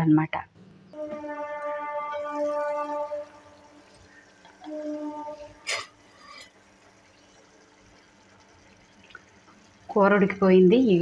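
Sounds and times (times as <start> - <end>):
gravy simmering in a pan: 2.4 - 10.6.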